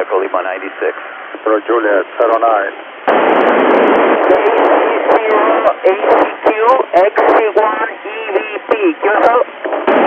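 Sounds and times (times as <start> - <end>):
radio static hiss: 0.0 - 10.0
voice over radio: 4.2 - 9.5.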